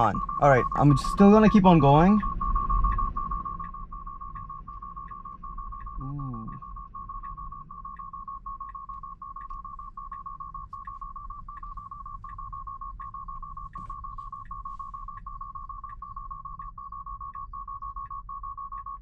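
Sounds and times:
rapid high-pitched car alarm beeping: 0.0s - 19.0s.

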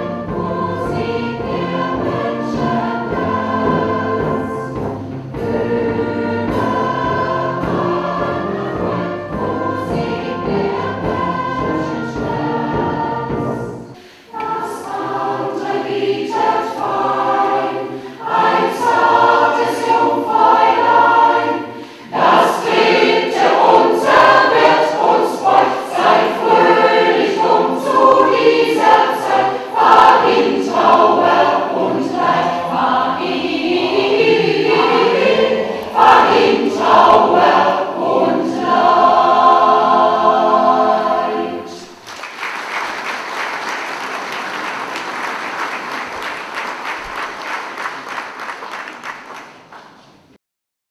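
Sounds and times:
mixed choir singing: 0.0s - 42.0s.

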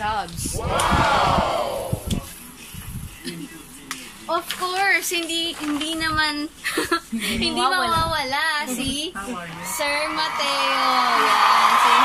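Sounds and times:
crowd shouting or cheering: 0.6s - 2.1s, 9.6s - 12.0s.

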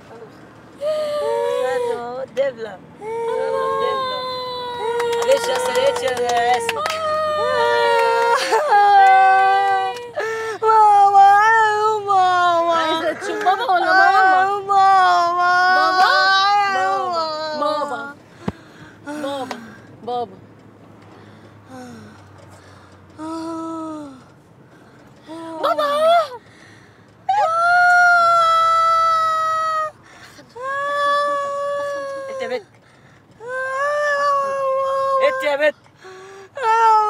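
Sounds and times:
voices: 0.0s - 37.0s
woman wailing: 0.8s - 2.2s, 3.0s - 18.2s, 27.3s - 30.0s, 30.6s - 32.6s, 33.4s - 35.7s
woman's high wordless calls: 0.8s - 2.2s, 3.0s - 18.2s, 27.3s - 32.7s, 33.4s - 35.8s.

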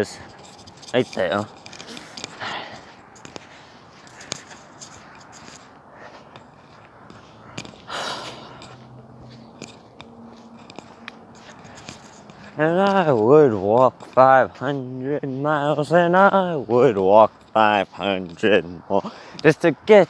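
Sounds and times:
clothing rustling on microphone: 0.0s - 16.0s.

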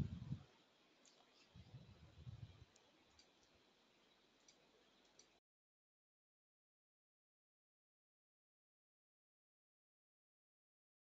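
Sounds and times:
soft low rumble: 0.0s - 0.5s, 1.4s - 2.7s
faint clicks: 2.7s - 5.4s.

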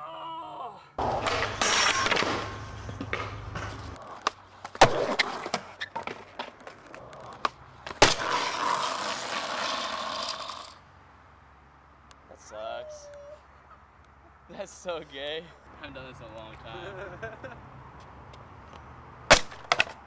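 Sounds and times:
skateboard clacks: 1.0s - 10.7s, 19.3s - 20.0s
skateboard wheels rolling on concrete: 1.0s - 10.9s, 14.6s - 20.0s.

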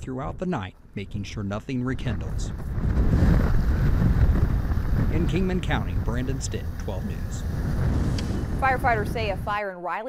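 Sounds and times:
truck engine and tyres rumbling: 0.8s - 9.5s
wind buffeting microphone: 1.0s - 9.6s.

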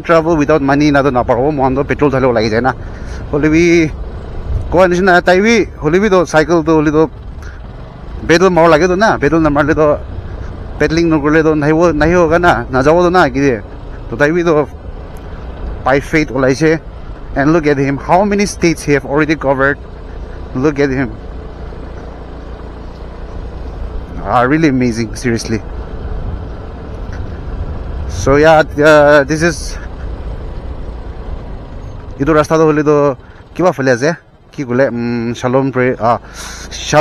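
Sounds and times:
man speaking: 0.0s - 4.0s, 4.7s - 7.2s, 8.2s - 10.1s, 10.7s - 14.7s, 15.8s - 19.8s, 20.4s - 21.3s, 24.1s - 25.7s, 28.1s - 30.1s, 32.2s - 37.0s
road and wind noise: 0.0s - 37.0s
scooter engine rumble: 0.0s - 37.0s.

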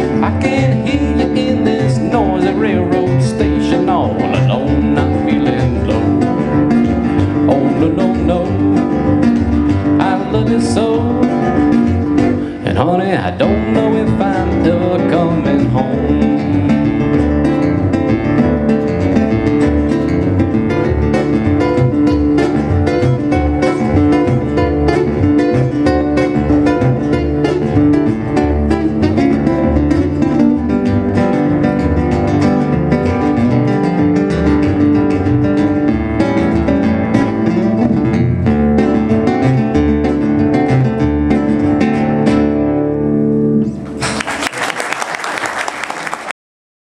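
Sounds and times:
acoustic guitars fingerpicking: 0.0s - 44.3s
washtub bass line: 0.0s - 44.5s
audience applause: 43.9s - 46.4s.

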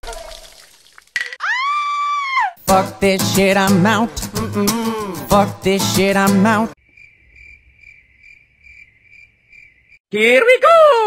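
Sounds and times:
crickets chirping: 6.8s - 10.0s.

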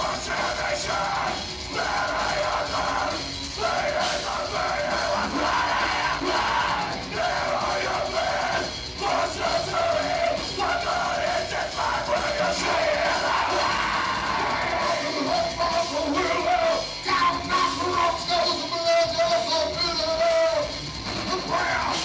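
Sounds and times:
electric guitar: 0.0s - 22.0s
keyboards: 0.0s - 22.0s
rock drums: 0.0s - 22.0s.

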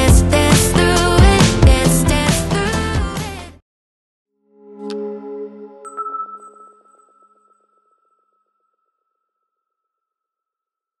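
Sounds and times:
high chime tone with fluttering echo: 5.2s - 9.3s.

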